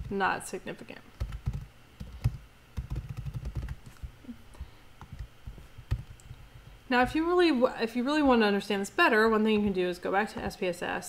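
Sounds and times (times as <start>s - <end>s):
typing on computer keyboard: 1.2s - 3.9s, 5.9s - 6.2s.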